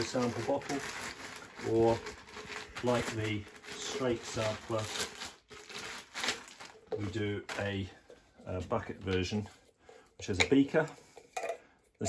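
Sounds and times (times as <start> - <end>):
plastic bag crinkling: 0.0 - 7.9.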